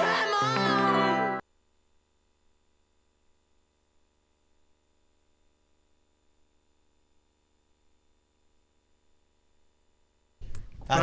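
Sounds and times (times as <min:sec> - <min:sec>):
tv jingle music: 0:00.0 - 0:01.4.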